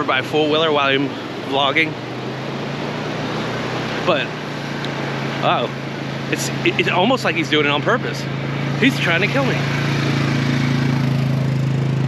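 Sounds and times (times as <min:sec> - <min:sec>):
four-wheeler engine running: 0:00.0 - 0:12.0.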